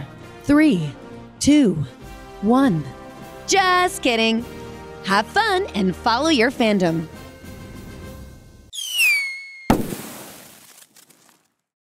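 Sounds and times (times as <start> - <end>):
falling whistle: 8.7 - 9.7
sudden bang: 9.7 - 10.2.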